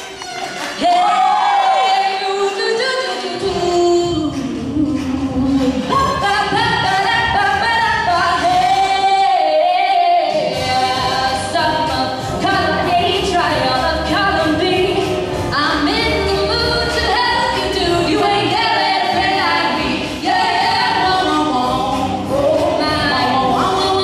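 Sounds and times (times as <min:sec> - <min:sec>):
musical accompaniment: 0:00.0 - 0:24.0
girls singing into microphones: 0:00.8 - 0:24.0.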